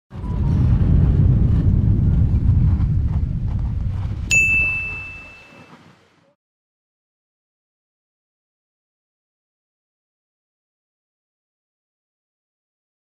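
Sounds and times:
low rumble: 0:00.1 - 0:05.3
bright chime: 0:04.3 - 0:05.8.

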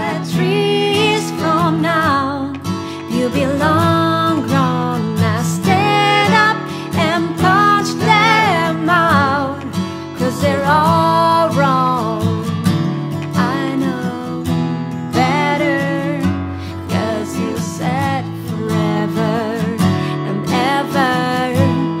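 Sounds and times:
person singing: 0:00.0 - 0:12.6, 0:13.2 - 0:22.0
strummed acoustic guitar: 0:00.0 - 0:22.0.

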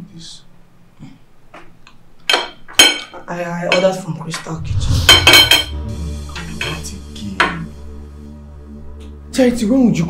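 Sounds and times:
forks tapping and scraping plates: 0:02.2 - 0:05.8.

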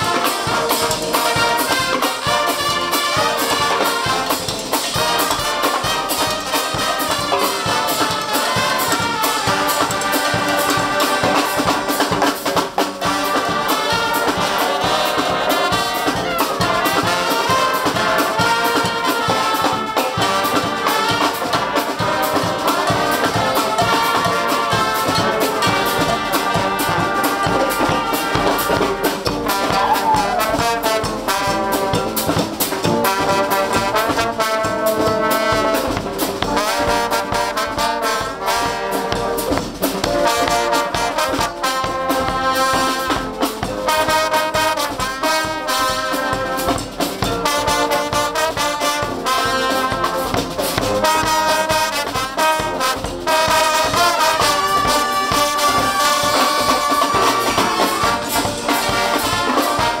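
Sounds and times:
bass drum and snare drum: 0:00.0 - 1:00.0
brass band playing lively tune: 0:00.0 - 1:00.0.

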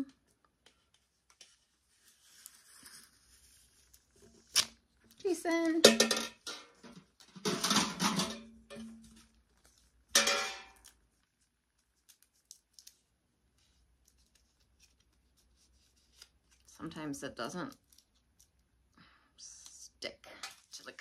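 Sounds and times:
paper backing peeled: 0:01.2 - 0:05.8, 0:10.8 - 0:16.9
metal pails clanking: 0:05.8 - 0:09.1, 0:10.2 - 0:10.8.

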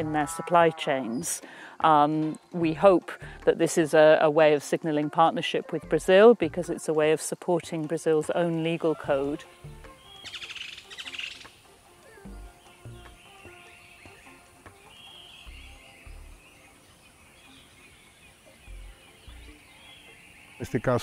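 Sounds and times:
birds chirping and singing: 0:00.0 - 0:21.0
soft music with low bass: 0:00.0 - 0:21.0
bird trill: 0:08.6 - 0:21.0.

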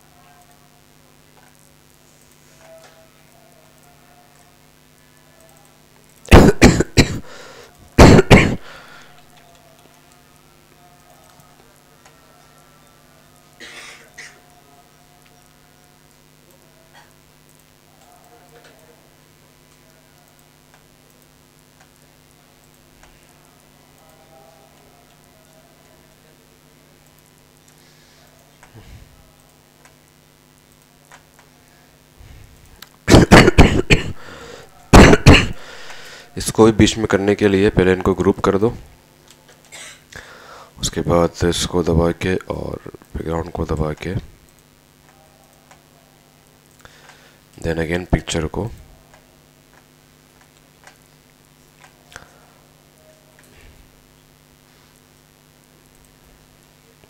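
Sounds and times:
man coughing: 0:06.3 - 0:09.0, 0:13.6 - 0:14.4, 0:33.1 - 0:35.8.

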